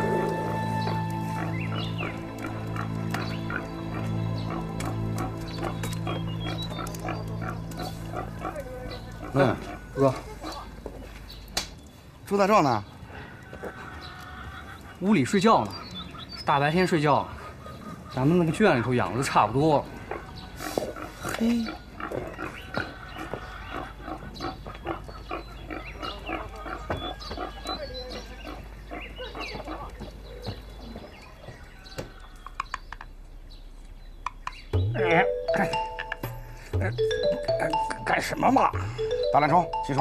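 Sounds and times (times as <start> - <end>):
low music drone: 0.0 - 9.8, 34.7 - 40.0
pigs grunting: 1.3 - 10.8, 17.2 - 31.0.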